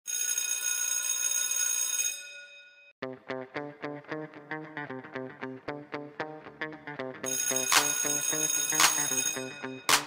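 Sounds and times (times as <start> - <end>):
electric school bell ringing: 7.3 - 10.0.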